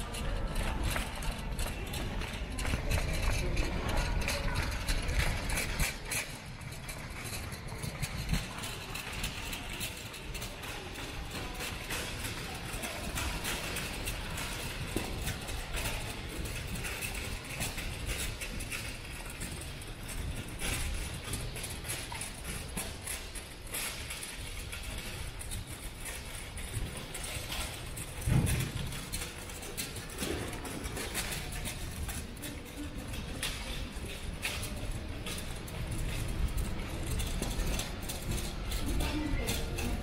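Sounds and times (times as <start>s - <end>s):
footsteps on tiled floor: 0.0s - 40.0s.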